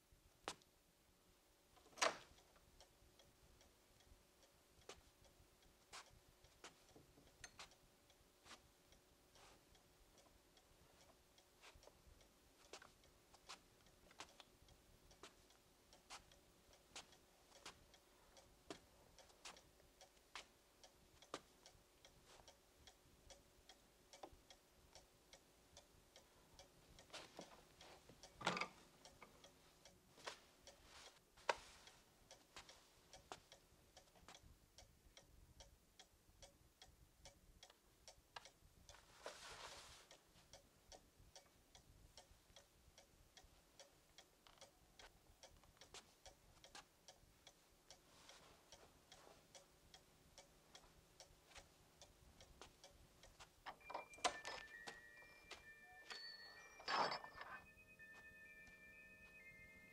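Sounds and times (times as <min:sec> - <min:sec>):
steady regular ticking: 0:00.0 - 0:59.9.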